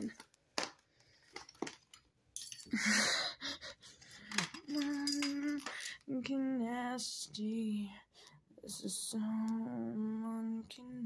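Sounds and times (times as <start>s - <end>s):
girl's voice: 4.6s - 11.0s.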